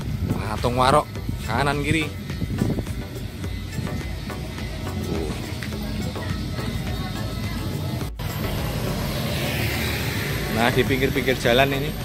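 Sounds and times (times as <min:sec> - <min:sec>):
background music: 0:00.0 - 0:12.0
motor scooter passing: 0:00.0 - 0:12.0
street noise: 0:00.0 - 0:12.0.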